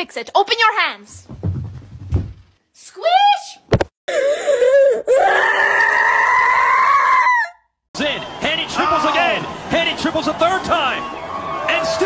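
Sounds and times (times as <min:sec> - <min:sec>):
woman screaming: 0:04.8 - 0:07.6.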